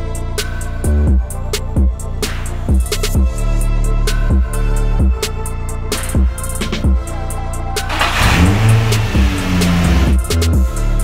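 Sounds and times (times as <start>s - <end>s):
background music: 0.0s - 11.0s
car engine revving: 7.9s - 10.7s.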